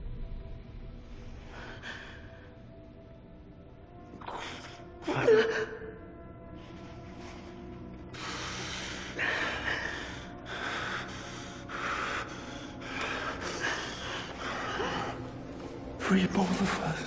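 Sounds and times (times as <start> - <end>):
man breathing heavily: 1.2 - 3.2, 6.4 - 15.9.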